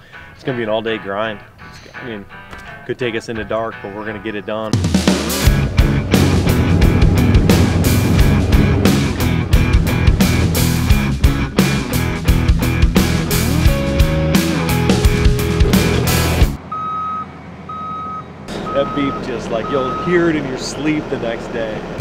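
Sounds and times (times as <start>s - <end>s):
music with heavy drum beat: 4.7s - 16.6s
low machine hum: 5.4s - 12.2s
reversing alarm beeping: 16.7s - 20.4s.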